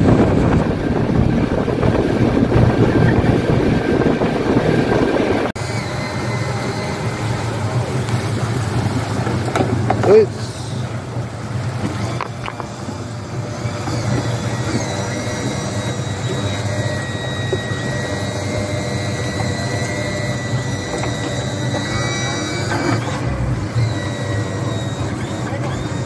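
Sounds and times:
outboard motors idling: 0:00.0 - 0:26.0.

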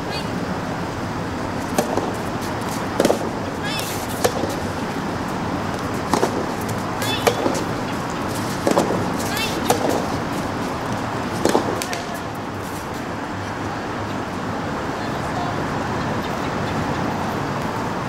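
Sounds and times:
outdoor background noise: 0:00.0 - 0:18.0
ball bouncing on court: 0:01.7 - 0:12.3
tennis ball struck by rackets: 0:01.7 - 0:12.3.

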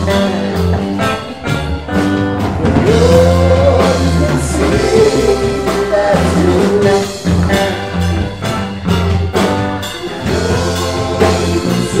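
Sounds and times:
bass guitar: 0:00.0 - 0:12.0
electric guitar: 0:00.0 - 0:12.0
keyboard: 0:00.0 - 0:12.0
steady drum beat: 0:00.0 - 0:12.0
person singing: 0:02.6 - 0:08.4, 0:09.8 - 0:12.0.

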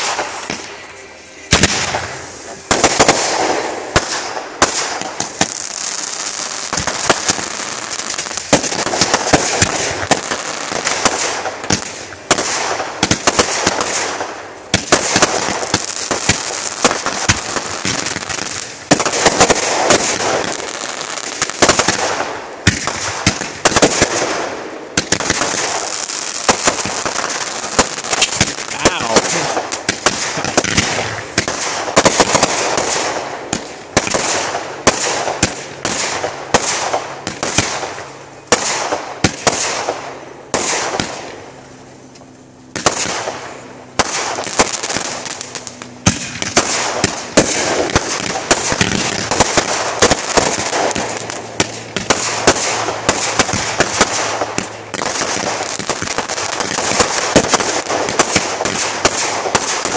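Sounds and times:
fireworks launch pops and bursts: 0:00.0 - 0:41.4, 0:42.1 - 0:59.9
crackling fireworks hiss: 0:00.0 - 0:59.9.

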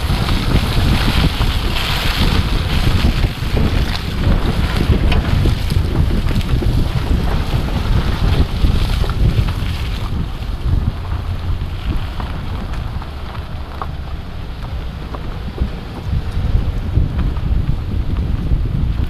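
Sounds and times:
truck rolling on dirt trail: 0:00.0 - 0:19.0
wind buffeting microphone: 0:00.0 - 0:19.0.

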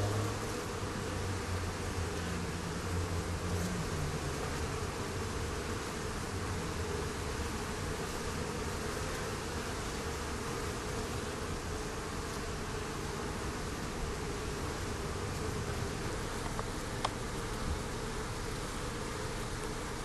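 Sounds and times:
honeybees buzzing: 0:00.0 - 0:20.0.

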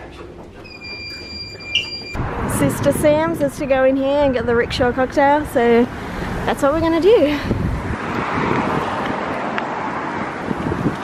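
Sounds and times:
lift electronic beep: 0:00.6 - 0:02.2.

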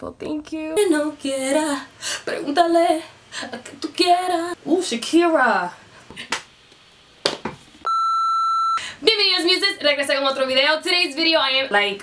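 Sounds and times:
censor beep tone: 0:07.9 - 0:08.8.

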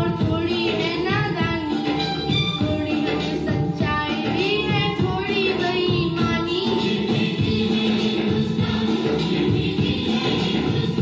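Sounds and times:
boy singing into a microphone: 0:00.0 - 0:09.0
recorded backing music: 0:00.0 - 0:11.0.

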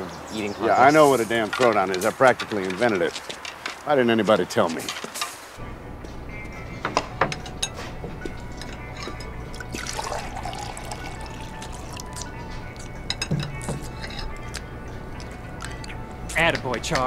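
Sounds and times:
quiet background music: 0:00.0 - 0:17.0
glassware and dishes clinking: 0:07.2 - 0:14.5
liquid pouring: 0:09.6 - 0:12.4.

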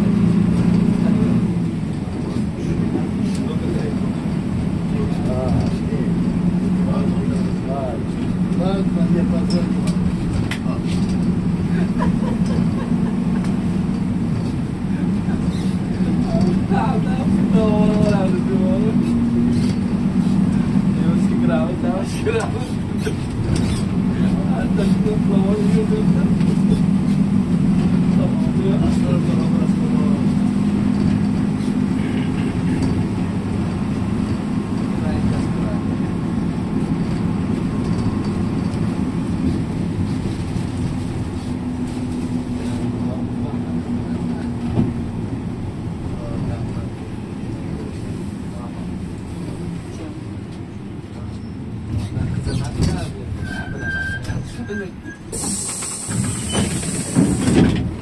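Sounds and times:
road noise: 0:00.0 - 0:58.0
vehicle engine drone: 0:00.0 - 0:58.0.

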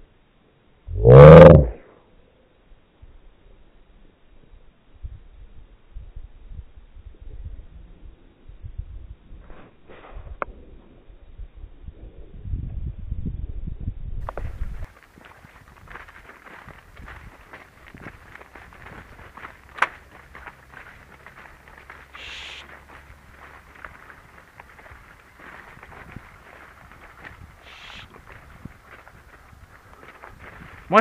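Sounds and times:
footsteps in crop field: 0:14.2 - 0:31.0
short hisses: 0:22.2 - 0:22.7, 0:27.6 - 0:28.1.

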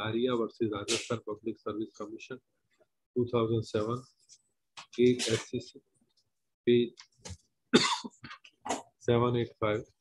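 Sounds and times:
person coughing: 0:07.8 - 0:08.8.

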